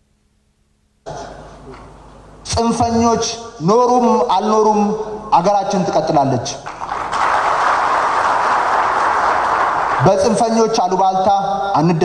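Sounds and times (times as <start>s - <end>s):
audience applauding: 6.7s - 10.4s.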